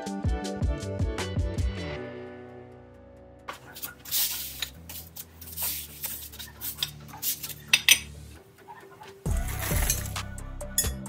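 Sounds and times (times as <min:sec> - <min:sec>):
metal lengths knocking and clinking: 0:07.7 - 0:08.1.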